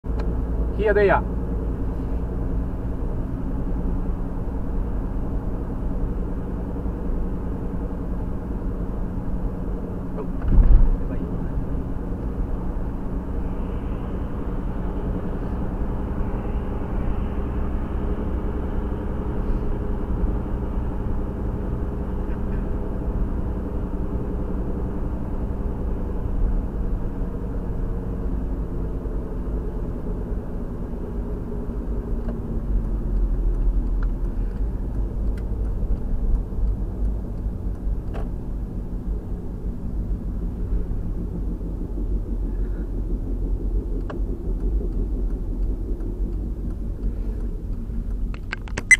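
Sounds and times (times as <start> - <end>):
car engine and road rumble: 0.0 - 48.9.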